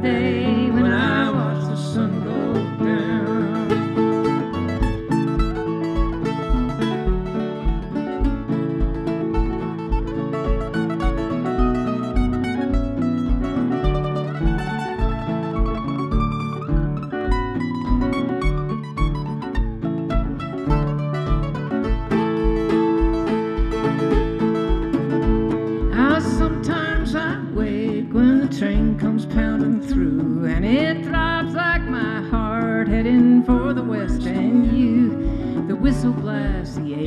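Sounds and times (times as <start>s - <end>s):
mandolin playing: 0.0s - 37.0s
strummed acoustic guitar: 0.0s - 37.0s
steady low beat: 4.2s - 26.6s.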